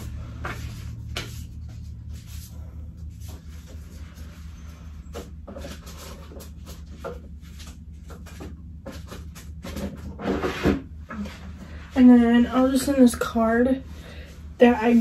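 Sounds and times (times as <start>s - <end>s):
rummaging knocks and rustles: 0.0s - 11.8s.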